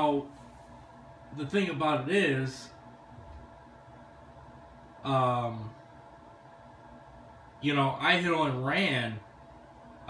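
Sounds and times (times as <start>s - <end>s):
faint steady hum: 0.0s - 10.0s
low hiss: 0.0s - 10.0s.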